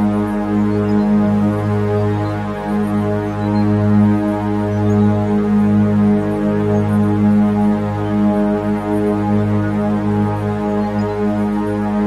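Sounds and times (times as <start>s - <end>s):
sustained electronic drone: 0.0s - 12.0s.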